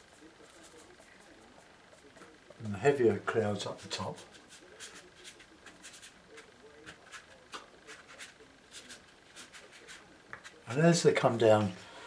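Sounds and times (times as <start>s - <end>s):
brush strokes on wet paper: 0.0s - 2.3s, 3.7s - 10.7s.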